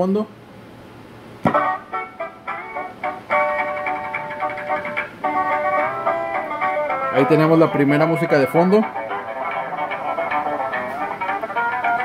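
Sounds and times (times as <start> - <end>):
electronic melody: 1.6 - 12.0.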